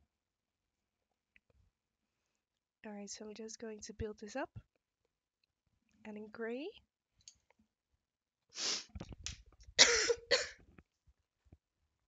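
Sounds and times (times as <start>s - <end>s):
quick intake of breath: 8.6s - 9.0s
woman coughing: 9.8s - 10.6s.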